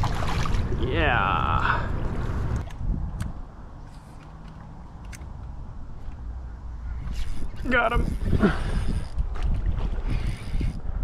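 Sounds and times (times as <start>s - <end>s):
wind rumbling on microphone: 0.0s - 11.0s
fishing reel clicks: 10.1s - 10.8s.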